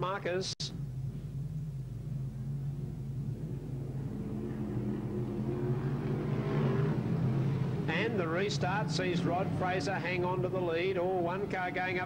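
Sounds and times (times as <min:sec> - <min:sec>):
race car engines droning: 0:00.7 - 0:12.0.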